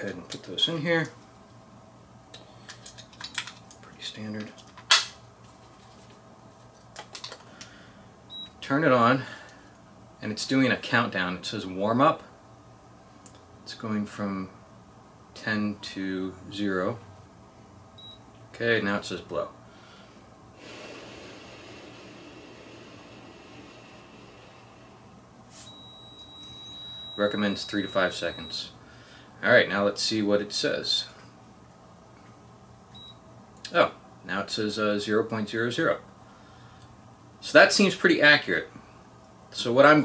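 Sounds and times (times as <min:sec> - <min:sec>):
high-pitched beep tone: 0:25.7 - 0:28.6.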